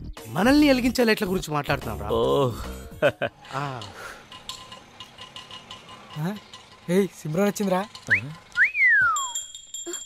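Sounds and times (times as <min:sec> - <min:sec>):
person wolf whistling: 0:08.1 - 0:09.4
high ringing chime tones: 0:08.8 - 0:10.0.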